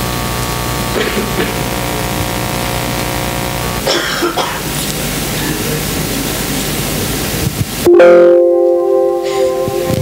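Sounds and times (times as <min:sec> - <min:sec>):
loud steady hiss: 0:00.0 - 0:10.0.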